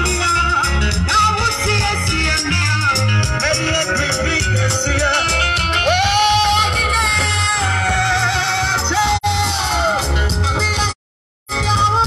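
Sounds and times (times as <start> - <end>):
gospel live band playing: 0.0 - 12.0
steady bass line: 0.0 - 12.0.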